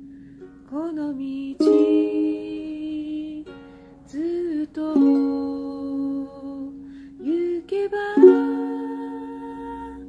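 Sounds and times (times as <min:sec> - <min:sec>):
ukulele chord ringing: 0:00.0 - 0:10.0.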